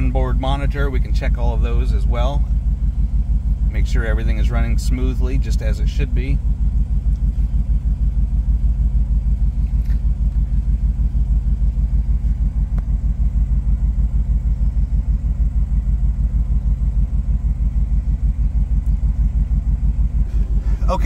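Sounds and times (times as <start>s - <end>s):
truck engine idling: 0.0s - 21.0s.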